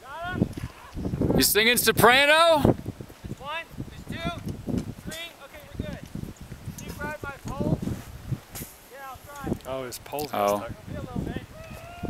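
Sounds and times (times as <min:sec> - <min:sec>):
people talking: 0:05.1 - 0:06.0, 0:06.8 - 0:07.8, 0:08.9 - 0:11.5.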